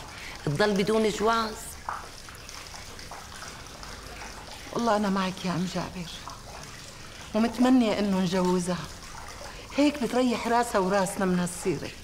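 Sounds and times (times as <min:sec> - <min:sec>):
trickle of running water: 0:00.0 - 0:12.0.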